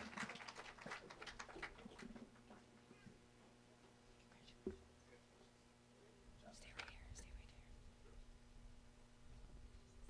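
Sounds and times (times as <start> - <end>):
person whispering a word: 6.4 - 7.8.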